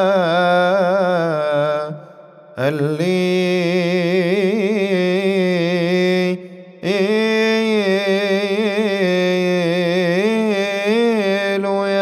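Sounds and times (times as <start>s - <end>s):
man singing a chant: 0.0s - 12.0s.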